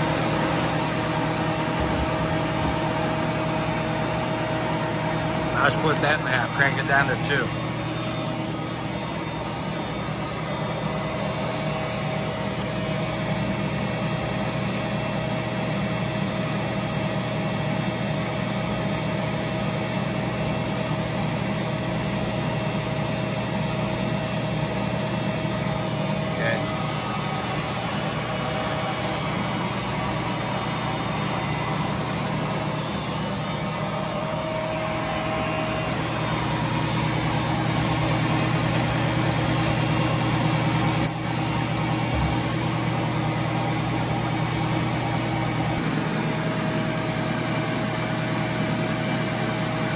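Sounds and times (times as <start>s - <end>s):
splitting machine humming: 0.0s - 16.2s, 19.6s - 49.9s.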